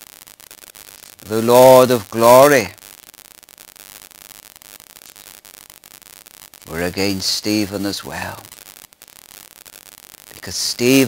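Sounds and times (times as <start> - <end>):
faint crackling ticks: 0.0 - 1.3, 2.8 - 11.0
steady electronic hiss: 0.0 - 11.0.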